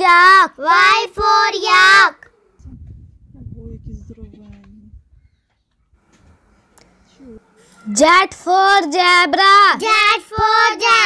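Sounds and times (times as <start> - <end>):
low rumble: 2.6 - 5.3.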